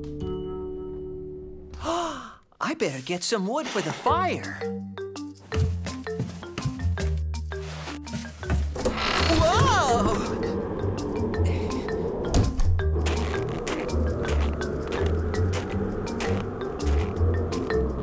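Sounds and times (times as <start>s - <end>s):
cartoon music with low bass: 4.1s - 18.0s.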